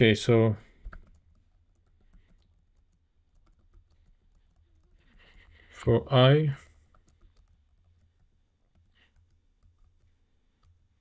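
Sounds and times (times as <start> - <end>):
computer keyboard typing: 0.6 - 5.7, 6.6 - 10.9.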